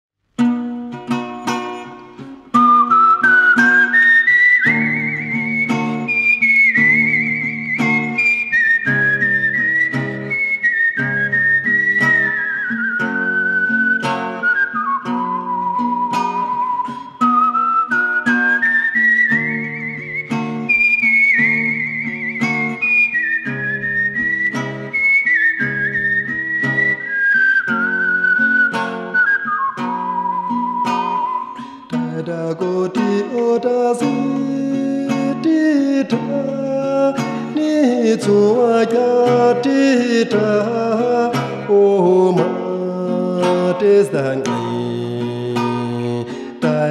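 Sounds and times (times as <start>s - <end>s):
acoustic guitar picking: 0.3s - 46.9s
whistled melody: 1.3s - 32.2s, 32.9s - 42.8s.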